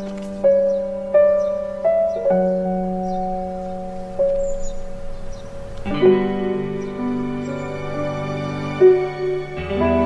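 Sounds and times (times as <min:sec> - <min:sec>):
slow soft piano music: 0:00.0 - 0:10.0.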